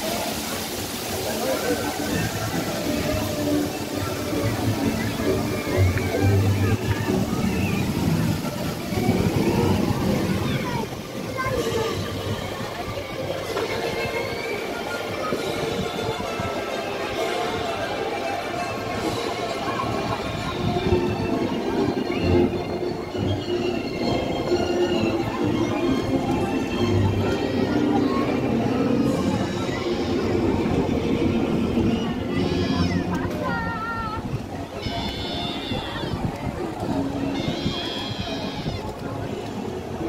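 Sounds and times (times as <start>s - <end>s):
amusement park background music: 0.0s - 40.0s
crowd voices: 0.0s - 40.0s.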